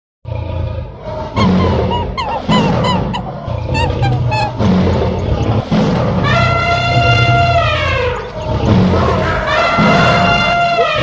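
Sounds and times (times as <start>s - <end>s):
music: 0.3s - 11.0s
stampede low rumble: 0.3s - 11.0s
animal calls: 0.8s - 11.0s.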